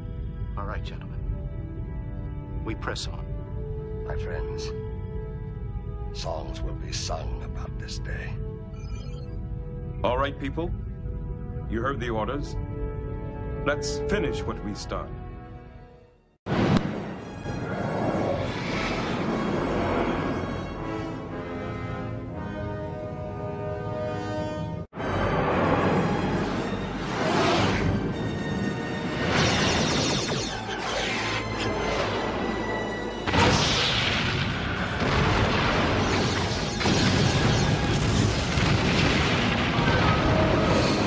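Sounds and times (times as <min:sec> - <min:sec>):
film score: 0:00.0 - 0:41.0
orchestral music: 0:00.0 - 0:41.0
explosions: 0:33.3 - 0:41.0.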